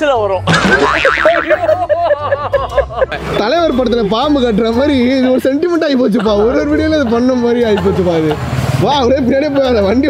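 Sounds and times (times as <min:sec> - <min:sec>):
cartoon pitch slide effect: 0:00.5 - 0:01.6
rapid rhythmic laughter: 0:00.5 - 0:03.5, 0:05.9 - 0:08.4.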